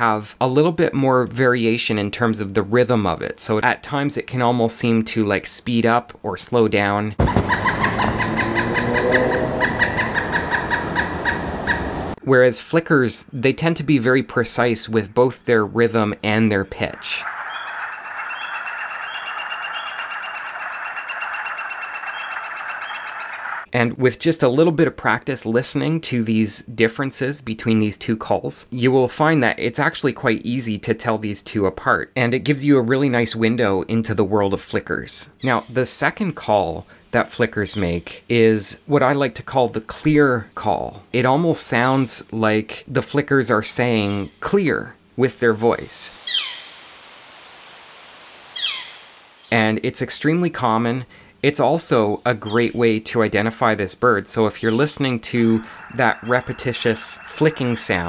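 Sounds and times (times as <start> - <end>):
bird call rapid repeated notes: 7.2 - 12.2, 17.0 - 23.7, 46.2 - 46.8, 48.5 - 49.6, 54.6 - 58.0
background hiss: 9.3 - 14.9, 34.9 - 58.0.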